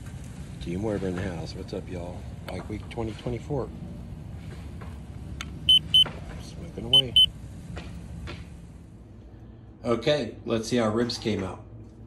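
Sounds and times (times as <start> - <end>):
low steady rumble: 0.0 - 11.0
thermometer short high beeps: 5.7 - 6.0, 6.9 - 7.3.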